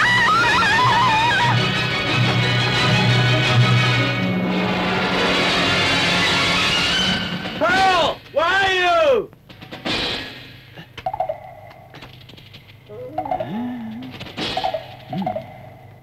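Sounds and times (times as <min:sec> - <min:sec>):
drawn-out pitched cries: 0:00.0 - 0:02.4
film soundtrack music: 0:00.0 - 0:07.8.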